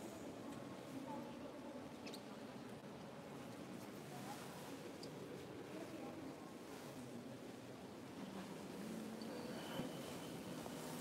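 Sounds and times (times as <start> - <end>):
faint murmur of voices: 0.0 - 11.0.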